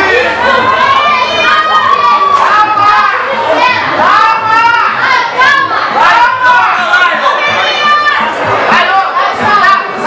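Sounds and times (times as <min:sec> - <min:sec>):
crowd yelling: 0:00.0 - 0:10.0.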